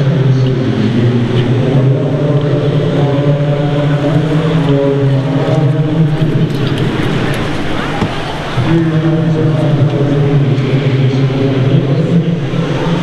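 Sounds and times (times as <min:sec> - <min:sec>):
low mechanical drone: 0:00.0 - 0:13.0.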